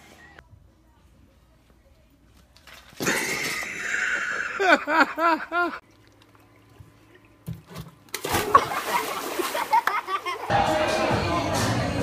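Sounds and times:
water sloshing: 0:05.8 - 0:10.5
splash into swimming pool: 0:08.1 - 0:10.1
music: 0:10.5 - 0:12.0.

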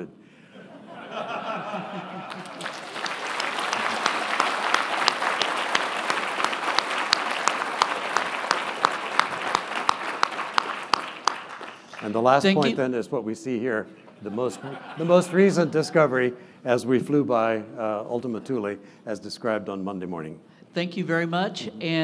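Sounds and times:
audience applauding: 0:01.6 - 0:12.7.

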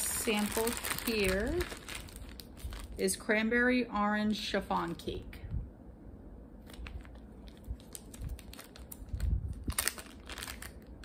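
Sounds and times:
plastic bag crinkling: 0:00.0 - 0:03.3, 0:06.6 - 0:11.0.

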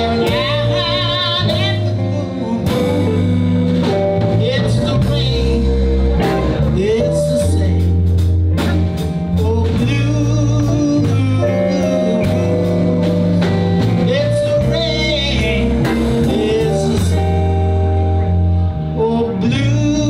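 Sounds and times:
live blues band playing: 0:00.0 - 0:20.0.

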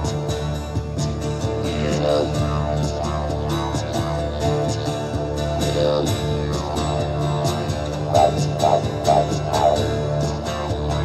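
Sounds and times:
didgeridoo drone: 0:00.0 - 0:11.0
strummed acoustic guitar: 0:00.0 - 0:11.0.

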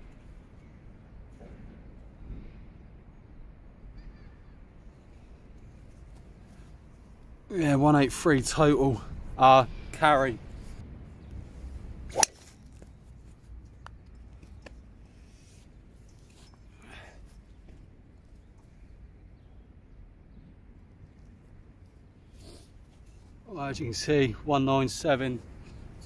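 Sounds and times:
golf club striking ball: 0:12.1 - 0:12.5.

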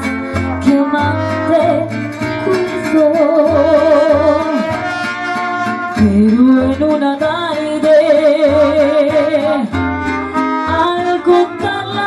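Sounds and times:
trumpets: 0:00.0 - 0:06.4, 0:09.7 - 0:12.0
plucked bass notes: 0:00.0 - 0:12.0
strummed guitars: 0:00.0 - 0:12.0
woman singing with vibrato: 0:00.0 - 0:12.0.

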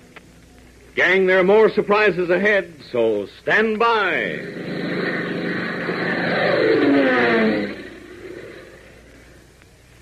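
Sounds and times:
faint recording hiss: 0:00.0 - 0:10.0
airplane engine falling in pitch: 0:04.1 - 0:09.4.

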